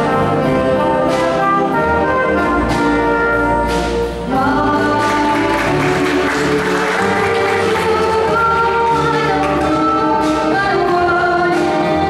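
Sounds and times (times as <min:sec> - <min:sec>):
jazz band playing: 0:00.0 - 0:12.0
person singing: 0:04.3 - 0:12.0.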